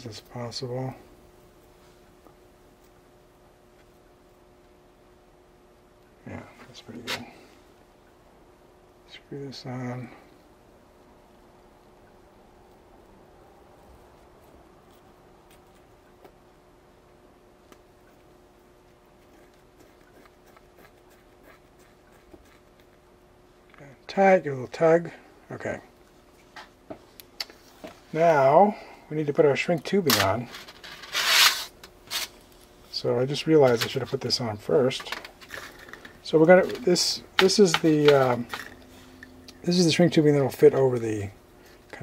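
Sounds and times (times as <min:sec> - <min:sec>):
faint hum: 0:00.0 - 0:42.0.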